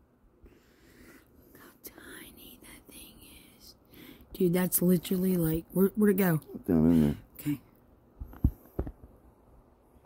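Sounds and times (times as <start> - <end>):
faint whispering: 1.5 - 3.8.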